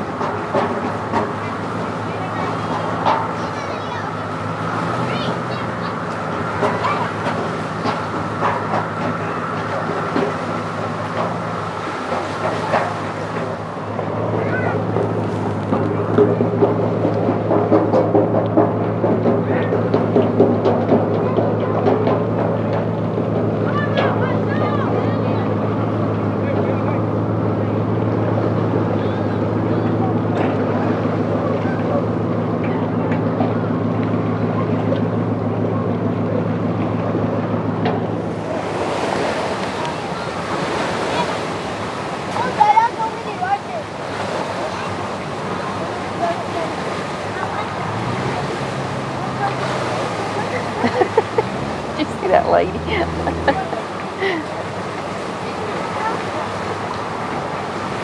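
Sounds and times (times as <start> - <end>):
engine idling: 0.0 - 58.0
murmur of voices: 0.0 - 58.0
waves: 0.0 - 58.0
wind: 0.0 - 58.0.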